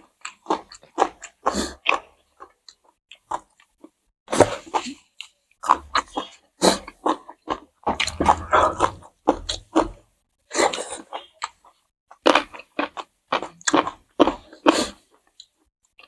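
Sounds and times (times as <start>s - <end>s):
wet chewing: 0.0s - 16.0s.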